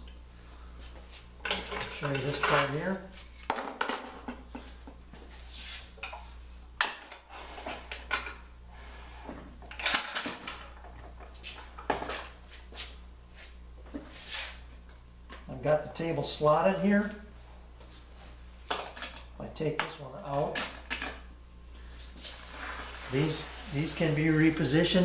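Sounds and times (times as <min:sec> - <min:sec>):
steady low hum: 0:00.0 - 0:25.0
metal sliding scrapes: 0:22.2 - 0:24.3.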